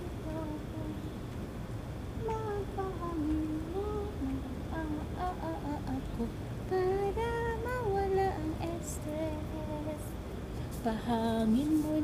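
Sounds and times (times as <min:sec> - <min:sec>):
woman singing: 0:00.0 - 0:01.2, 0:02.2 - 0:10.2, 0:10.8 - 0:12.0.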